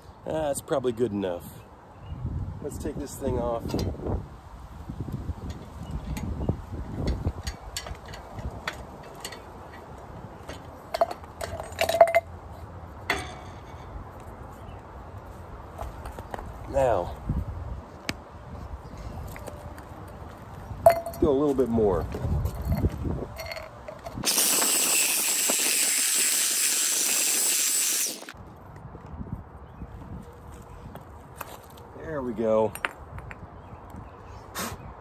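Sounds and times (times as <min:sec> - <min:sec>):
metal clamps clicking and rattling: 0:07.0 - 0:12.3, 0:22.6 - 0:26.3
metal clinking on concrete: 0:10.5 - 0:12.3, 0:20.8 - 0:21.4, 0:22.0 - 0:25.3.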